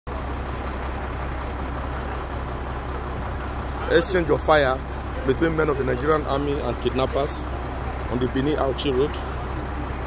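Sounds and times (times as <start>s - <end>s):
heavy vehicle engine idling: 0.1s - 10.0s.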